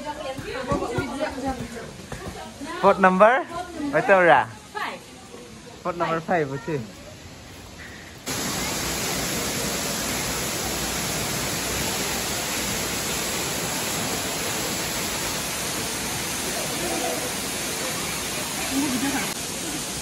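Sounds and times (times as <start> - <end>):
waterfall onto rocks: 0.3 - 20.0.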